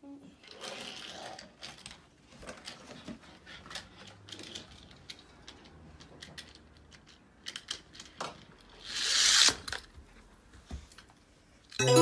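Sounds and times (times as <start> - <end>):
plastic toy pieces clicking: 3.7 - 9.9.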